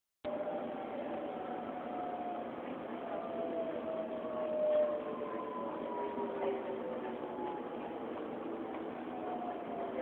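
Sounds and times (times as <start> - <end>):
train rumble: 0.3 - 10.0.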